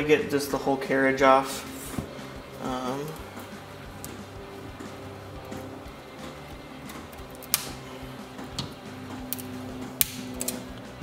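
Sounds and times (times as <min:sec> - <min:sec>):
background music: 0:00.0 - 0:11.0
cutters snipping zip ties: 0:09.2 - 0:10.9.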